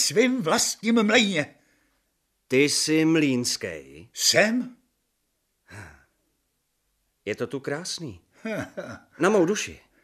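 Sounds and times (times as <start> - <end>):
person sighing: 5.6 - 6.2.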